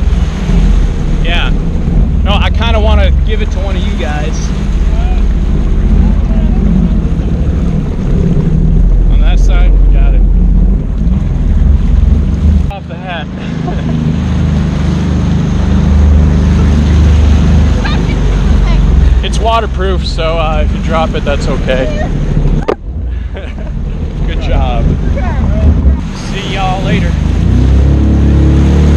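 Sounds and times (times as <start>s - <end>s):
wind buffeting microphone: 0.0s - 12.8s, 13.8s - 28.4s
jet ski engine running: 0.0s - 28.9s
water rushing past hull: 0.0s - 28.9s.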